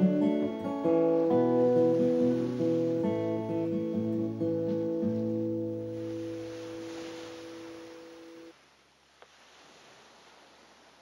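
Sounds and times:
acoustic guitar chord ringing: 0.0 - 8.5.

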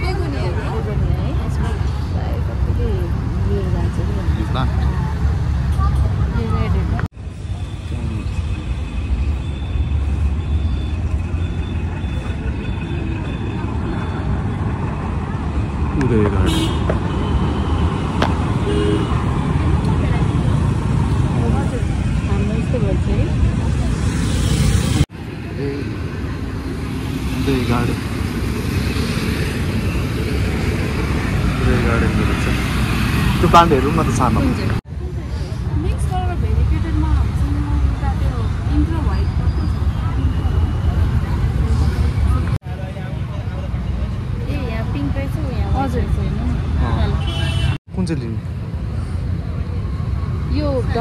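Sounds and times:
people talking: 0.0 - 7.1, 31.6 - 32.6, 33.4 - 47.2, 50.5 - 51.0.

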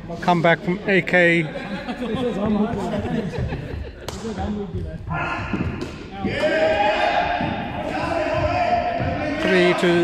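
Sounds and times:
players shouting: 5.1 - 10.0.

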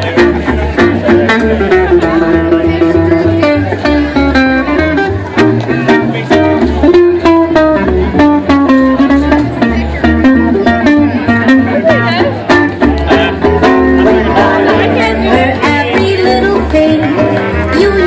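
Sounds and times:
jazz band playing swing: 0.0 - 18.0
walking bass line: 0.0 - 18.0.

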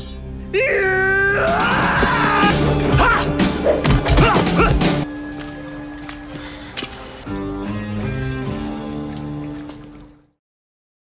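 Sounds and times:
yelps and yells: 0.5 - 4.8.

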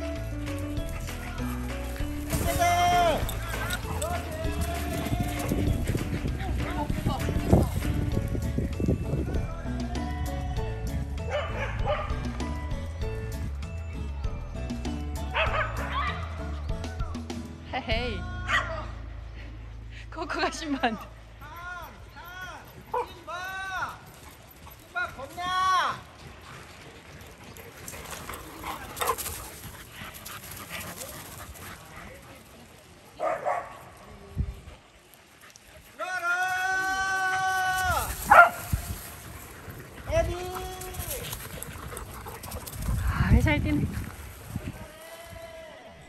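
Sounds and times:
dogs barking and yelping: 0.6 - 8.2, 11.3 - 12.4, 15.3 - 16.6, 27.0 - 32.3, 36.8 - 43.4.

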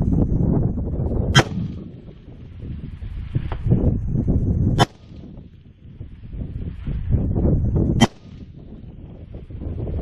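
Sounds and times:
wind rumbling on microphone: 0.0 - 10.0
rifle shot with echo: 1.4 - 2.0, 4.8 - 5.4, 8.0 - 8.5.

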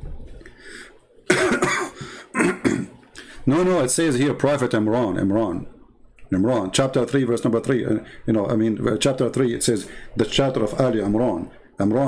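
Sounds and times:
man coughing: 1.3 - 3.0.

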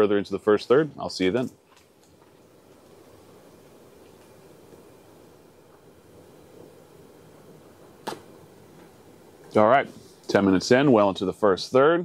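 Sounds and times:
short pop: 8.0 - 8.3.

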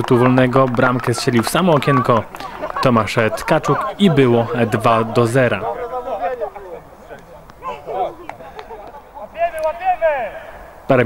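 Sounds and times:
commentary: 0.0 - 11.0
players shouting: 0.0 - 11.0
raised call: 0.0 - 11.0.

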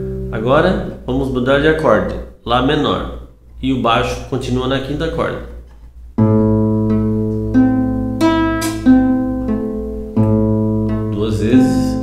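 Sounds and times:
classical guitar fingerpicking: 6.2 - 12.0.

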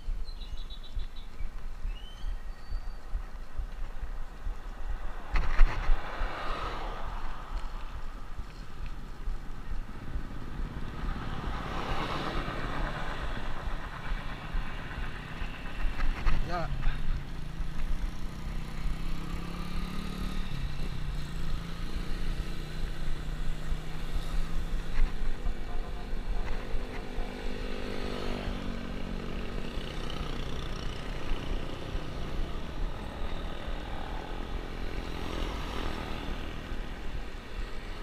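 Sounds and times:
motorcycle engine passing: 9.6 - 38.0.

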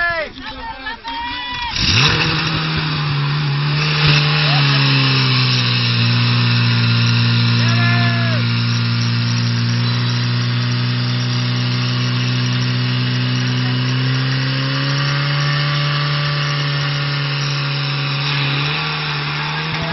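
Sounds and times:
pump engine running: 1.7 - 19.9.

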